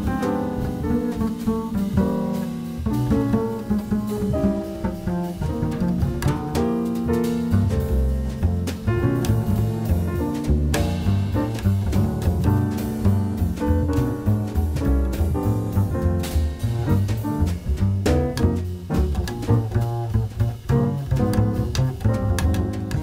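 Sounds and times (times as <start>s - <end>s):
double bass plucked: 0.0s - 23.0s
light drums: 0.0s - 23.0s
piano chords: 0.0s - 23.0s.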